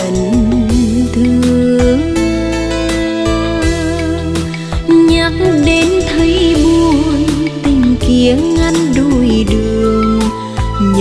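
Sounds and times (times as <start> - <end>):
guitar melody: 0.0 - 11.0.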